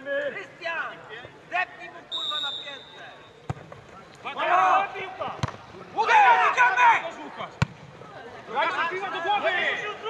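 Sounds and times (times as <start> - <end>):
referee's whistle: 2.1 - 3.4
football being kicked: 3.5 - 3.8, 5.4 - 5.6
players shouting: 4.2 - 7.6.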